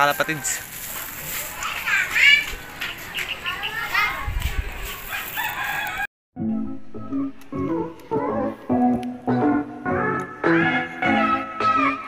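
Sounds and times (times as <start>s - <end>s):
birds calling: 2.4s - 4.3s
music with plucked notes: 6.4s - 12.0s.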